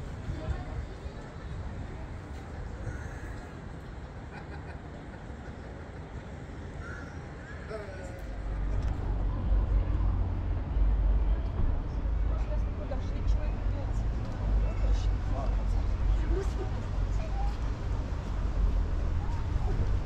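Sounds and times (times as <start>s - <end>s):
open-air background noise: 0.0s - 20.0s
crow cawing: 2.8s - 3.4s, 6.8s - 7.7s
loud low rumble: 8.3s - 20.0s.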